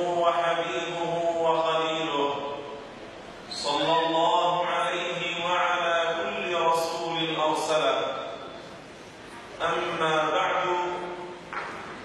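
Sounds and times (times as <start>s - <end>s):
man chanting recitation: 0.0s - 2.6s, 3.6s - 8.2s.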